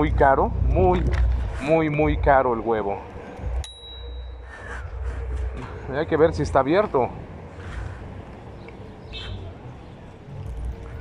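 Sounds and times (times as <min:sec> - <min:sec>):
low rumble from riding: 0:00.0 - 0:11.0
bicycle bell ringing: 0:03.6 - 0:04.5.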